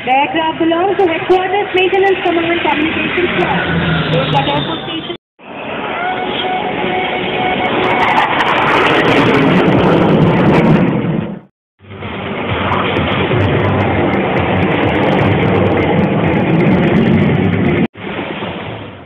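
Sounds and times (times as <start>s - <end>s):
jet engines flying overhead: 0.0s - 19.0s.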